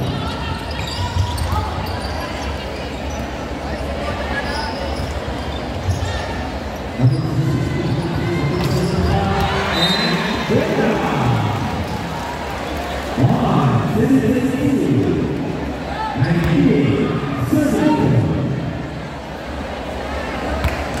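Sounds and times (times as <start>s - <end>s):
gym hall noise: 0.0s - 21.0s
ball bouncing on hard court: 20.6s - 21.0s.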